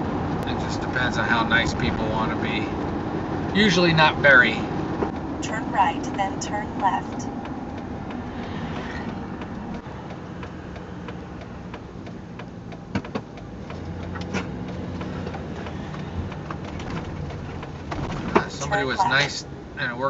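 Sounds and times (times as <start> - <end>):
vehicle engine and road noise: 0.0 - 20.0.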